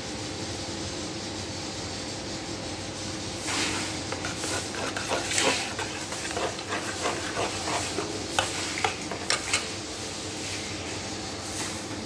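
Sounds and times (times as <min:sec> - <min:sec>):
metal spoon scraping pot: 0:04.1 - 0:09.7.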